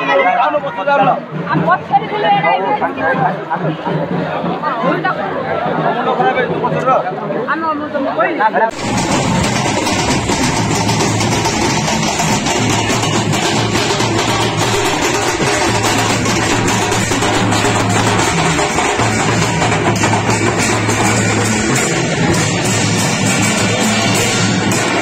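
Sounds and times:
large drums beaten fast: 0.9 - 7.0, 8.7 - 25.0.

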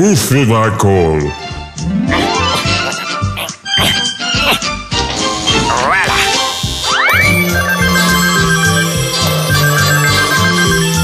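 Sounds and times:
telephone ringing: 6.4 - 11.0.

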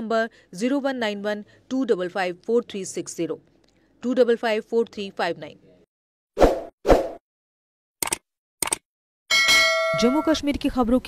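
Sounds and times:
short clicks: 8.0 - 8.8
ringing chime: 9.3 - 10.5.

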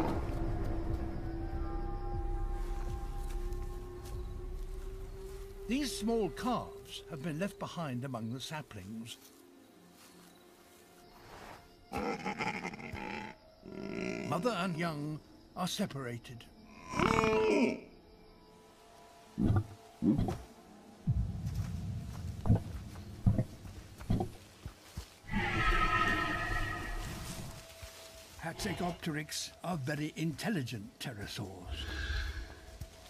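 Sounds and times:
dinosaur long call: 25.3 - 27.2
bleat-like animal cry: 25.3 - 27.3, 28.4 - 29.1.

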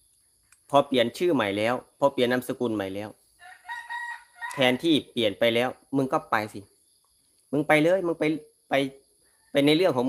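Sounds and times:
rooster crowing: 3.4 - 5.0.

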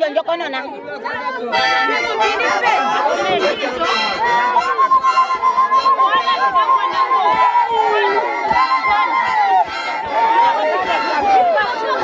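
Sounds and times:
crowd singing and calling out: 0.0 - 12.0.

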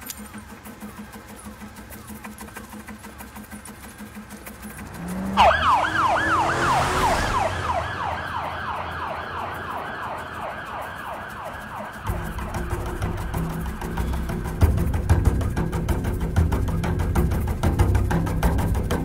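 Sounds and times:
police siren yelping: 4.9 - 13.9.

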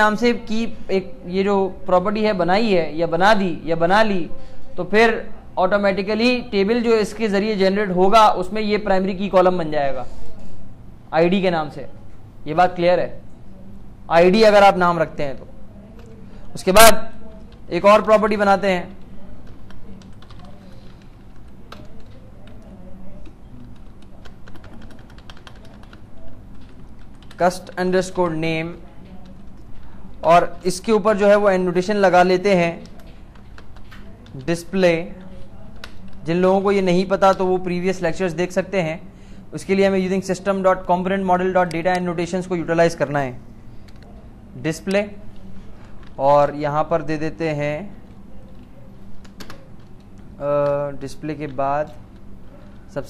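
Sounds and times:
typing on a keyboard: 19.0 - 27.8, 29.0 - 29.9, 32.8 - 34.6, 48.1 - 50.8.

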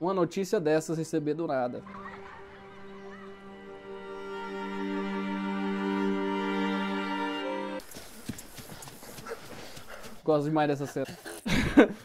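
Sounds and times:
running footsteps on grass: 7.8 - 10.6.

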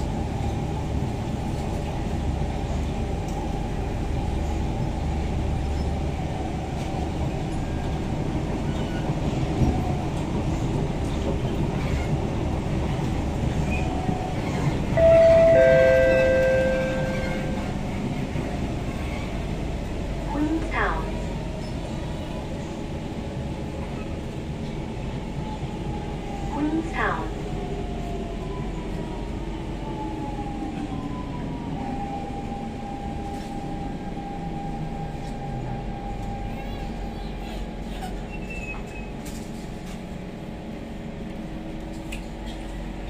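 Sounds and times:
train rumbling at speed: 0.0 - 43.0
two-tone train horn: 15.0 - 17.8.

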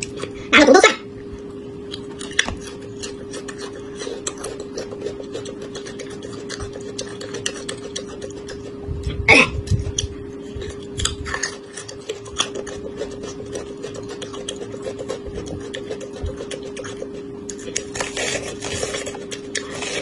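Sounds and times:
steady low hum: 0.0 - 20.0
chewing corn on the cob: 1.9 - 8.8, 9.6 - 20.0.

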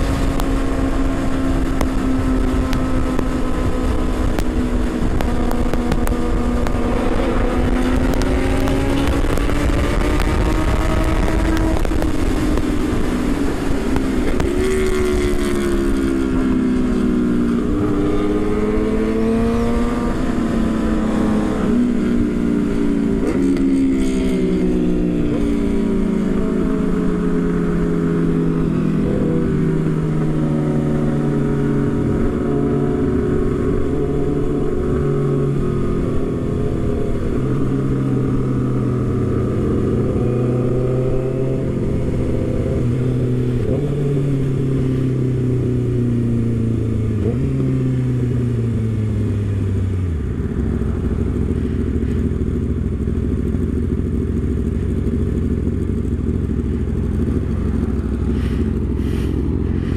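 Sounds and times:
wind rush on microphone: 0.0 - 27.4
motorcycle engine running: 0.0 - 59.9
road noise: 0.0 - 59.9.

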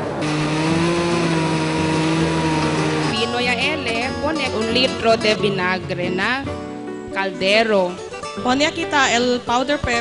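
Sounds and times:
electric blender running: 0.2 - 5.5.

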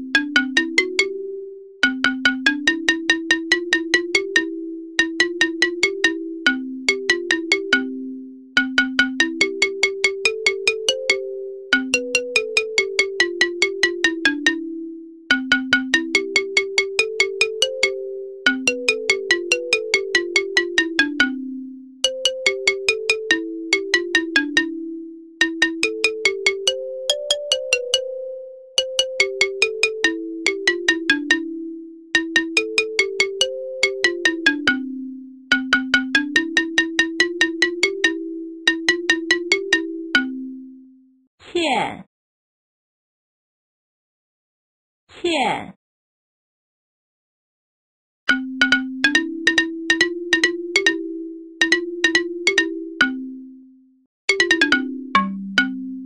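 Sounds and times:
bright simple melody: 0.0 - 41.3, 48.3 - 56.0.

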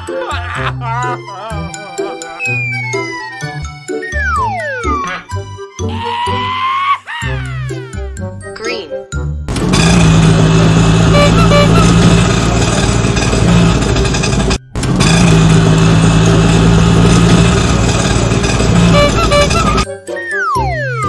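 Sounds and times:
auto-rickshaw engine running: 9.5 - 19.9.

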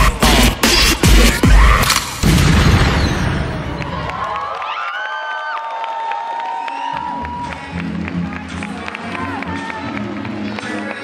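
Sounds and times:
backing music low beat: 0.0 - 1.8
audience cheering and screaming: 3.5 - 10.0.

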